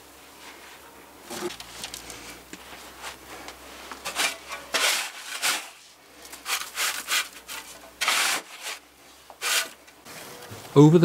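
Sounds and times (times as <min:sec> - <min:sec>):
hands scraping sand: 0:02.0 - 0:08.8, 0:09.4 - 0:09.8.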